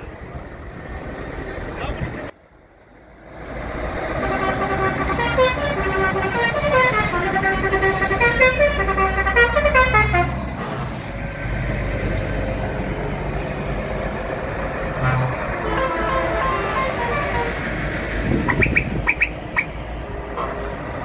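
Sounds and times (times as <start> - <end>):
diesel truck engine rumble: 0.0 - 21.0
musical air horn tune: 4.2 - 10.4, 15.0 - 17.7.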